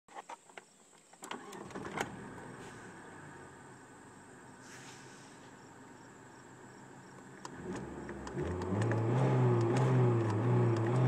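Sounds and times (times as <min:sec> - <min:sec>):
ignition clicks: 0:01.2 - 0:02.5, 0:07.0 - 0:11.0
car starter cranking: 0:01.2 - 0:03.0, 0:07.0 - 0:11.0
car engine idling: 0:01.3 - 0:11.0.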